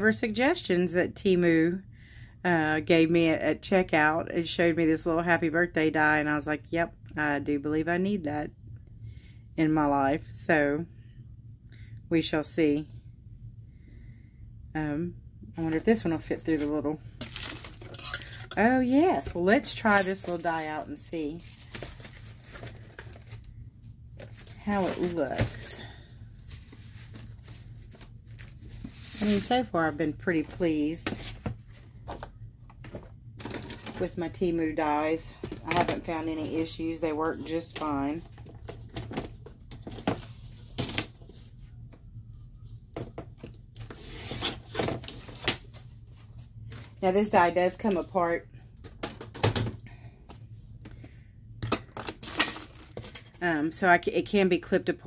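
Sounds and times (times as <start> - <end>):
steady low hum: 0.0 - 55.0
plastic packaging crinkling: 17.2 - 18.3, 20.3 - 23.6.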